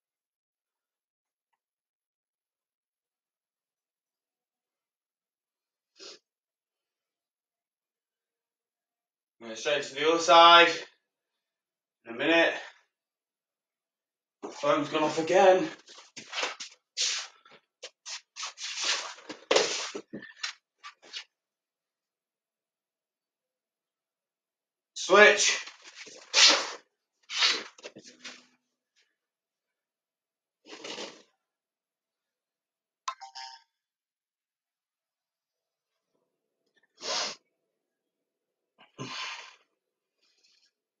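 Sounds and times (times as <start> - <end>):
clothing rubbing on floor: 15.8 - 21.2.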